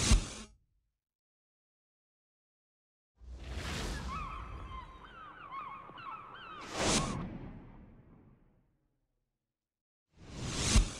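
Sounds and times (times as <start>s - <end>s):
seagull cries: 3.8s - 7.3s.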